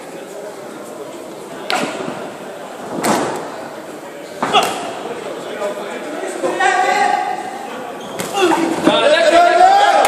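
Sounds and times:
people shouting: 8.3s - 10.0s.

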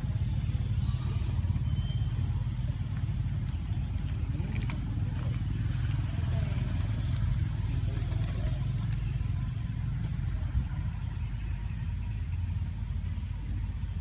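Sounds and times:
steady low rumble: 0.0s - 14.0s.

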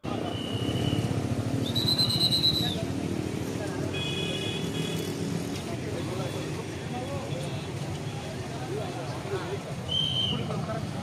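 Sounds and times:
faint crowd voices: 0.0s - 11.0s
road traffic rumble: 0.0s - 11.0s.

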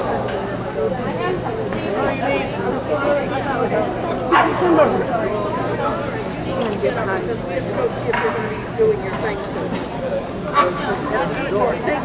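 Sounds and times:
people talking: 0.0s - 12.0s
dog barking: 4.3s - 4.6s.

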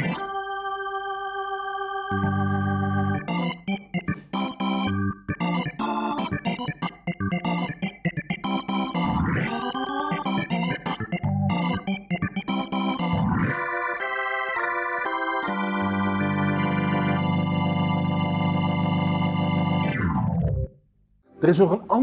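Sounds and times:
keyboard pitch glide: 0.0s - 20.7s
keyboard organ-like chords: 0.0s - 20.8s.

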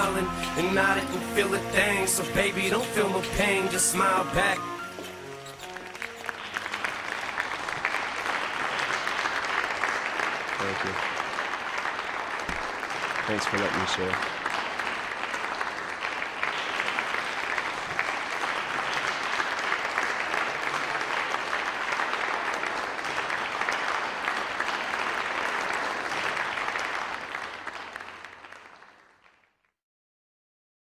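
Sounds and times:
audience applauding: 0.0s - 29.5s.

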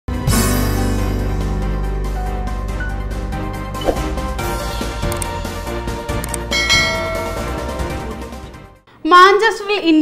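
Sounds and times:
background music: 0.1s - 10.0s
bell chime ding: 6.5s - 7.9s.

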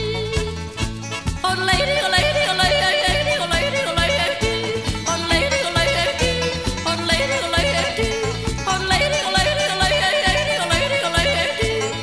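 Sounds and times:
country string band: 0.0s - 12.0s.

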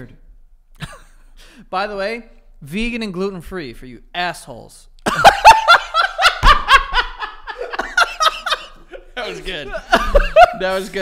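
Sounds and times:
man laughing hard: 5.1s - 10.9s.

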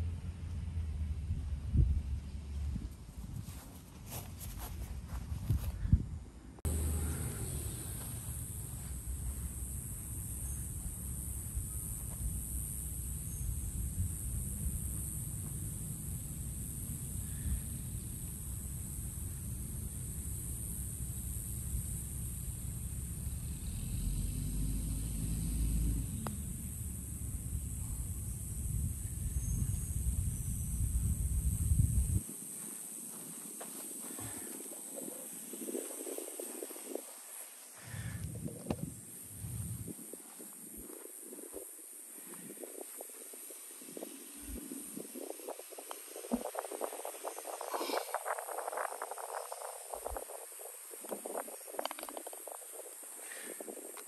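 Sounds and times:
wind rumble on microphone: 0.0s - 32.4s, 34.2s - 54.0s
steady high hiss: 6.6s - 54.0s.

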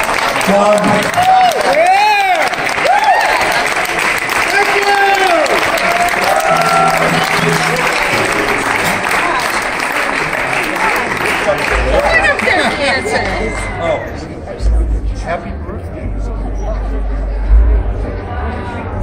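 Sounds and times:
audience applauding and cheering: 0.0s - 14.4s
whoops: 1.2s - 3.6s, 5.0s - 7.6s.

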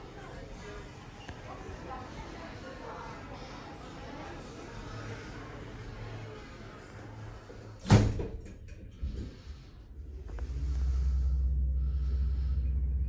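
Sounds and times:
low hum of lift moving: 4.5s - 13.0s.

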